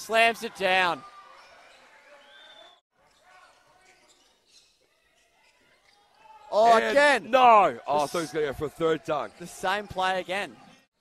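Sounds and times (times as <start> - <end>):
faint basketball game sounds: 0.0 - 11.0.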